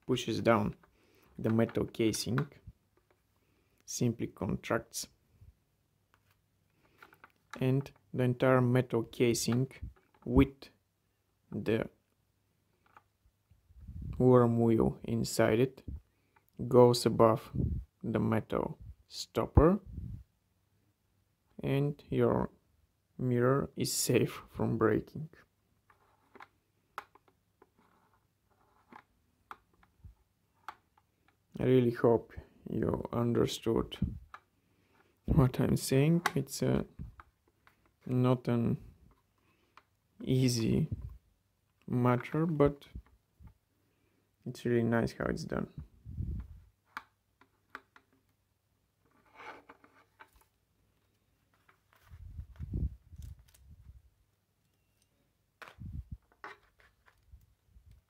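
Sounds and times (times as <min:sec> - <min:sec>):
plastic parts knocking and clicking: 0:06.1 - 0:08.1.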